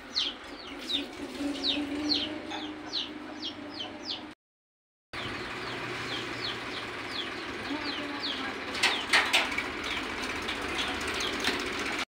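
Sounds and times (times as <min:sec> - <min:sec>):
small birds chirping: 0:00.0 - 0:04.4, 0:05.2 - 0:11.6.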